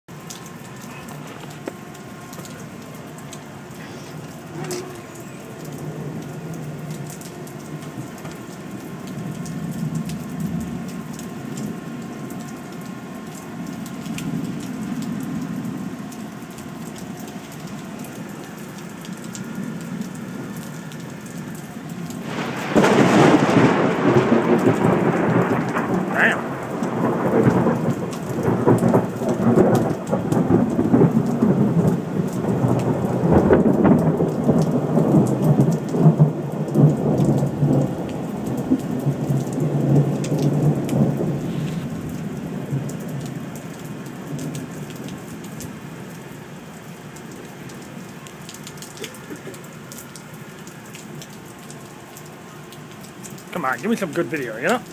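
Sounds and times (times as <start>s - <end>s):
steady rain: 0.1s - 54.9s
thunder rumbling: 17.2s - 45.3s.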